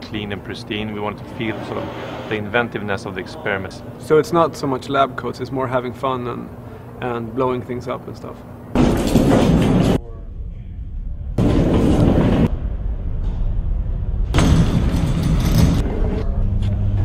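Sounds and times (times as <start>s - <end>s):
steady low hum: 0.0s - 17.0s
loud rumbling noise bursts: 8.8s - 16.6s.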